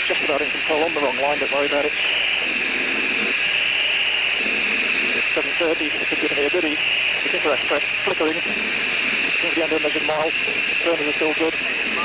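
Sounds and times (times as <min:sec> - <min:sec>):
jet engines on reheat: 0:00.0 - 0:12.0.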